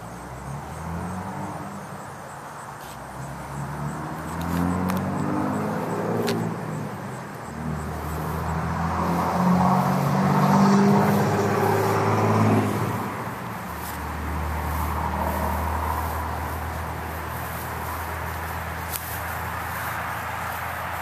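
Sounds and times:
car engine idling: 11.0s - 21.0s.

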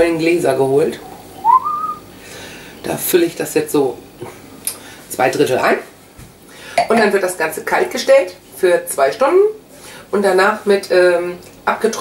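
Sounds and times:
rising whistled note: 1.4s - 2.0s.

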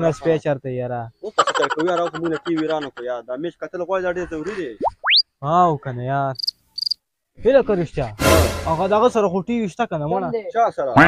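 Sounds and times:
men talking: 0.0s - 6.4s, 7.4s - 11.0s
high cricket chirping: 6.4s - 7.0s.

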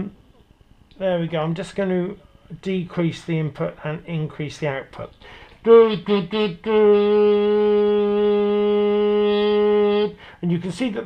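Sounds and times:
man singing steady note: 1.8s - 11.0s.

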